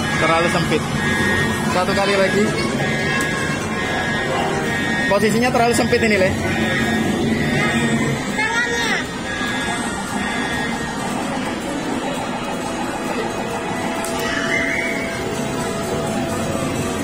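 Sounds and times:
electronic game machine music: 0:00.0 - 0:17.0.

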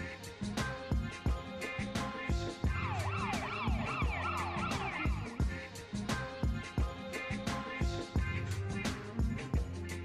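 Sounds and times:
music with steady drum beat: 0:00.0 - 0:10.0
siren wailing: 0:02.7 - 0:05.4.

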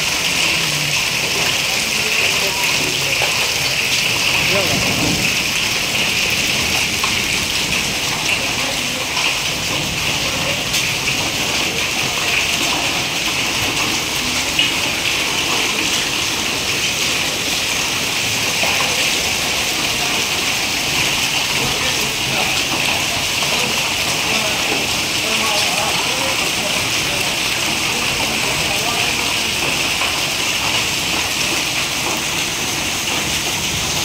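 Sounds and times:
hail and rain downpour: 0:00.0 - 0:34.0
hailstones ticking: 0:00.0 - 0:34.0.

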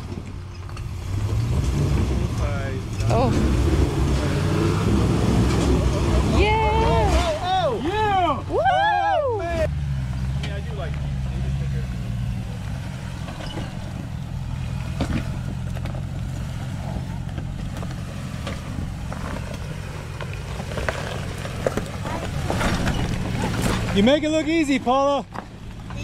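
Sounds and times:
truck engine running low: 0:00.0 - 0:26.0.

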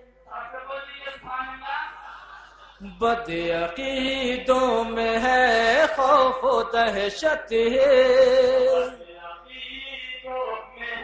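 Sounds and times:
man chanting: 0:00.2 - 0:11.0.

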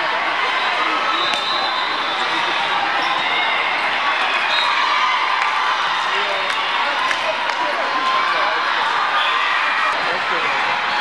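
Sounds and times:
din of many voices: 0:00.0 - 0:11.0.

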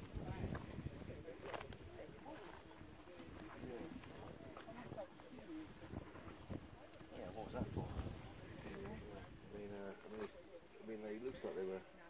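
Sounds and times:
faint indistinct talking: 0:00.0 - 0:12.0.

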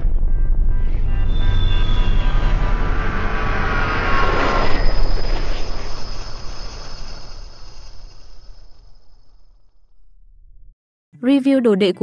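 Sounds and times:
deep rumble: 0:00.0 - 0:07.9
high falling ringing tones: 0:00.4 - 0:10.3.

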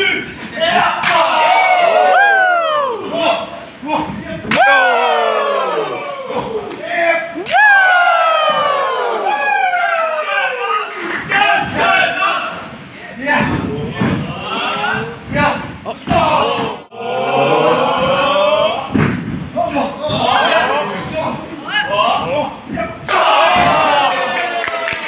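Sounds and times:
crowd yelling woo: 0:01.2 - 0:03.1, 0:07.5 - 0:10.6.

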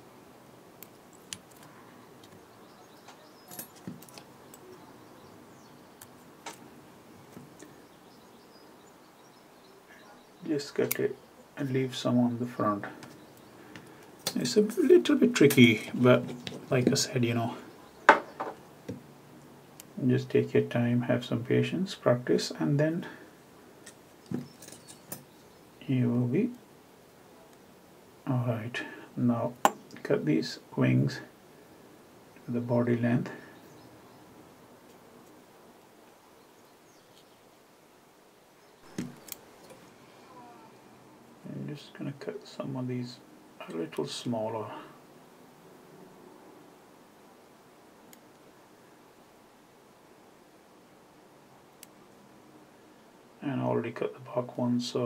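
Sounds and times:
low steady hiss: 0:00.0 - 0:55.0.

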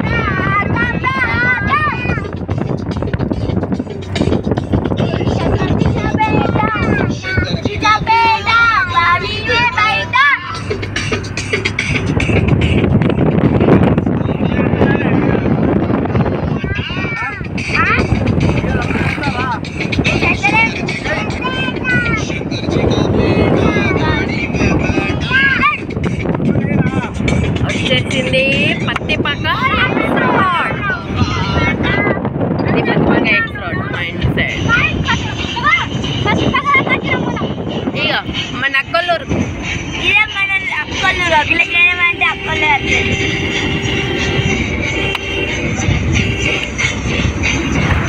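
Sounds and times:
voices or singing: 0:00.0 - 0:12.9, 0:13.6 - 0:48.0
car wind and road noise: 0:00.0 - 0:48.0.

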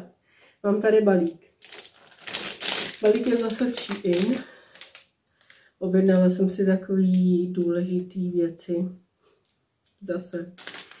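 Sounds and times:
woman speaking: 0:00.0 - 0:01.4, 0:02.9 - 0:04.6, 0:05.8 - 0:09.0, 0:10.0 - 0:10.6.

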